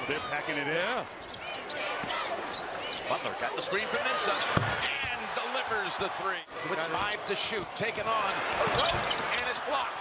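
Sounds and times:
sneakers squeaking: 0.2s - 3.3s, 3.9s - 4.8s, 8.3s - 9.6s.

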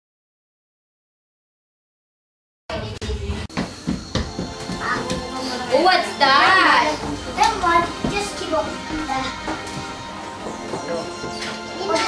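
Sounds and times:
busy room sound: 2.7s - 12.0s.

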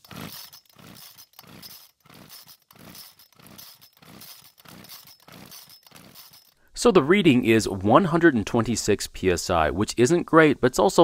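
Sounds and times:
engine cranked with recoil starter: 0.0s - 6.6s.

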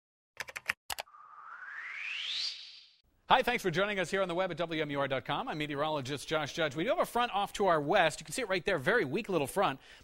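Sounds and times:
whoosh rising in pitch: 1.1s - 3.0s.

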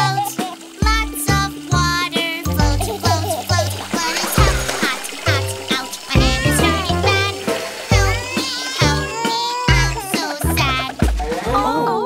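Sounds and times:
person singing children's song: 0.0s - 12.0s.

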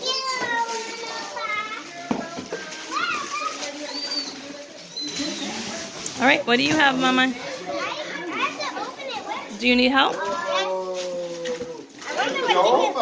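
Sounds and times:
children calling out and chattering: 0.0s - 13.0s.

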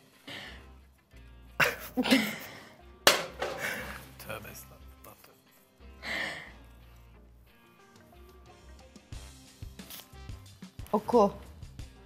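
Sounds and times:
soft background music: 0.0s - 12.0s
woman laughing: 1.6s - 2.6s.

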